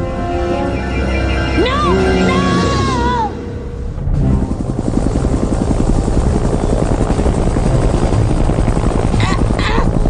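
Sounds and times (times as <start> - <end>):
helicopter rotor chopping: 0.8 - 10.0.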